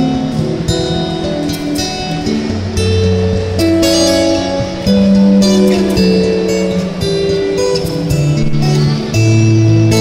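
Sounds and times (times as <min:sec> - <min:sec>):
plucked guitar melody: 0:00.0 - 0:10.0.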